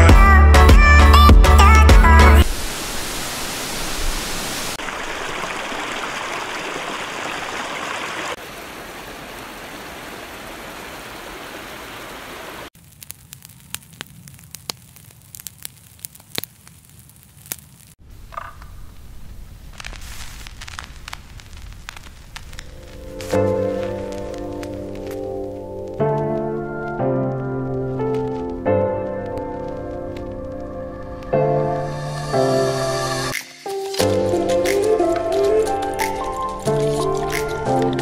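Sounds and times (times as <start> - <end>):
river water rushing over rapids: 2.4 - 12.7.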